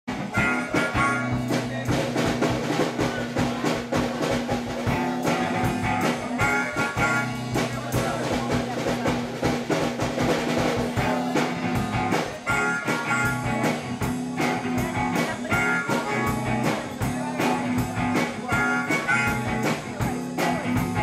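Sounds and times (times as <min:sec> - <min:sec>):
drum kit beat: 0:00.1 - 0:21.0
guitar: 0:00.1 - 0:21.0
harmonica: 0:00.2 - 0:02.1, 0:06.2 - 0:07.8, 0:12.4 - 0:14.5, 0:15.4 - 0:16.8, 0:18.1 - 0:19.9.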